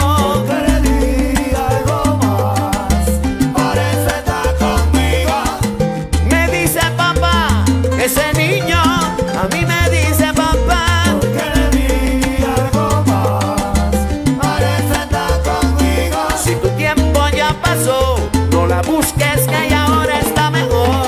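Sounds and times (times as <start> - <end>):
salsa music: 0.0 - 21.0.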